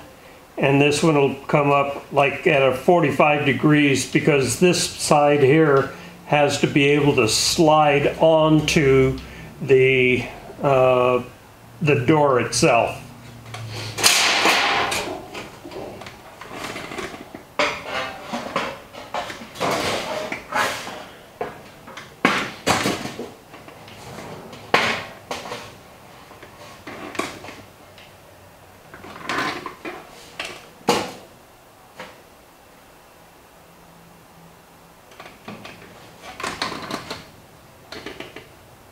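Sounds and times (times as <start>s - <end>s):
sheet metal rattling: 14.0s - 21.0s
metal clanks and knocks: 14.0s - 23.3s.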